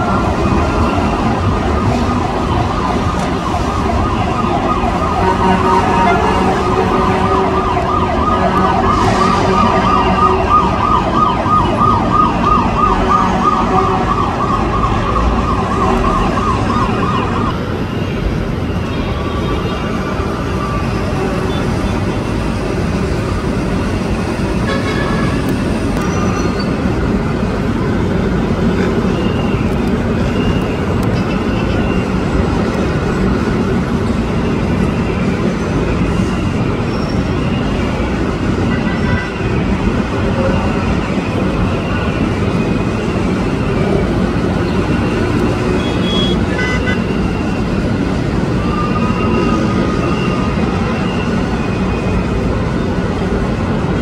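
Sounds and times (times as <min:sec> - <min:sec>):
siren warbling yelp: 0:00.0 - 0:17.6
traffic and city noise: 0:00.0 - 0:54.0.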